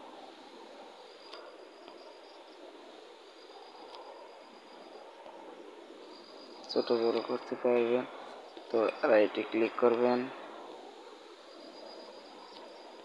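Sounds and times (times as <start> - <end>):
background hiss: 0.0 - 13.0
faint high whine: 0.0 - 13.0.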